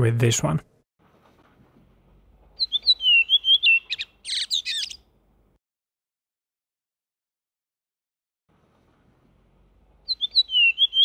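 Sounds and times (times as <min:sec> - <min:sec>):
bird singing whistled notes: 0:02.6 - 0:05.0, 0:10.0 - 0:11.0.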